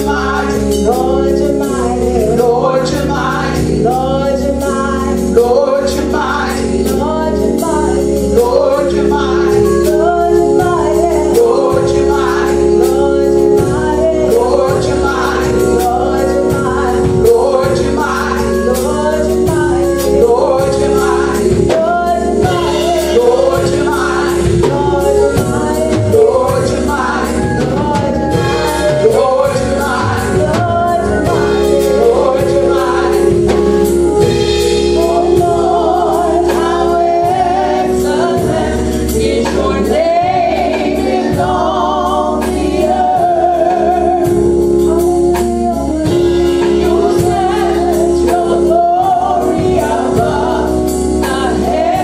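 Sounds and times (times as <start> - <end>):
instrumental accompaniment with beat: 0.0 - 52.0
women singing gospel together: 0.0 - 52.0.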